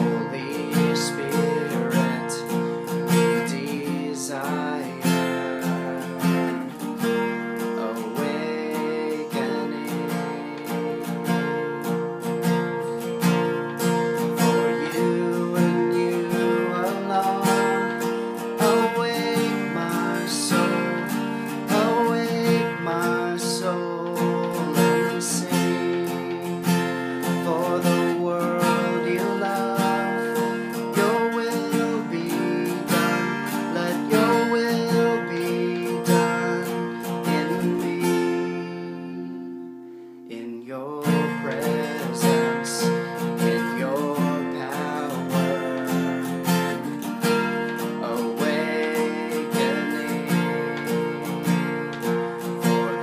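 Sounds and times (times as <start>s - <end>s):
acoustic guitar strumming chords: 0.0s - 53.0s.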